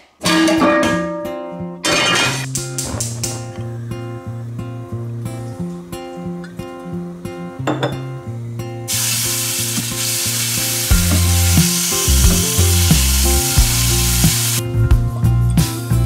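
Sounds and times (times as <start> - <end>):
background music: 0.7 - 16.0
chicken sizzling in hot oil: 8.9 - 14.6.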